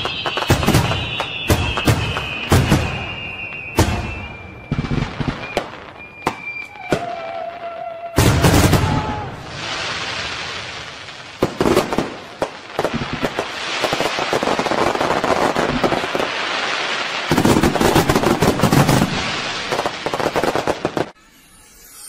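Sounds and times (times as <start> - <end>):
firework bangs and crackles: 0.0 - 21.2.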